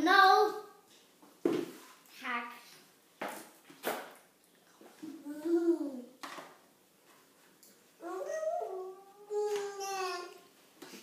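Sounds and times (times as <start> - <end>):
small child whining: 8.0 - 10.4.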